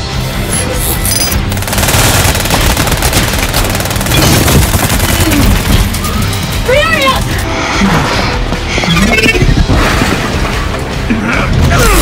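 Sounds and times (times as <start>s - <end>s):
dramatic trailer music: 0.0s - 12.0s
automatic gunfire: 1.6s - 5.9s.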